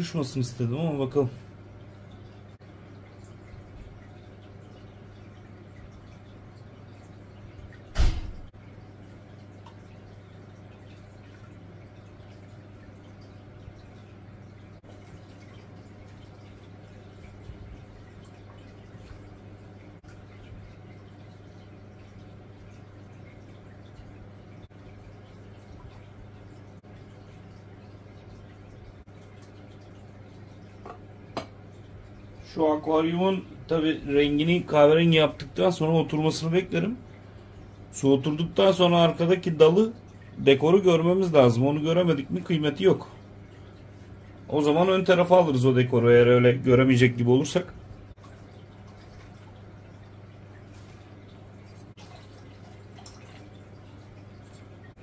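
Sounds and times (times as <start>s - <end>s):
steady low hum: 0.0s - 55.0s
water trickling into water: 0.0s - 55.0s.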